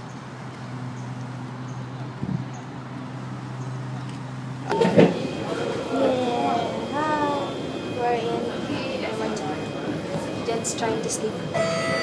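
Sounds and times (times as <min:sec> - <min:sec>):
low engine hum: 0:00.0 - 0:12.0
metro train clattering: 0:00.0 - 0:12.0.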